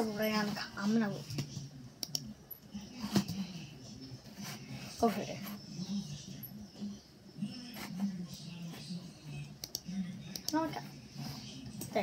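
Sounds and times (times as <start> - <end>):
faint low voices: 0.0 - 12.0
computer mouse clicks: 2.0 - 2.2, 9.6 - 10.6.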